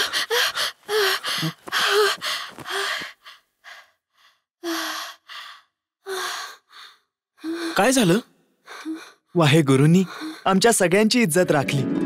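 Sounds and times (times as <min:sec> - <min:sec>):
person gasping breaths: 0:00.0 - 0:07.8.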